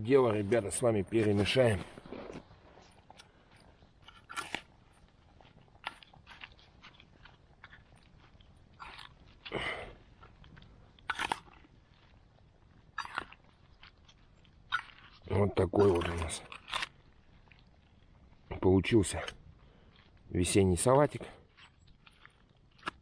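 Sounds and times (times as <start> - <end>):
wet crunches and clinks: 0.2 - 23.0.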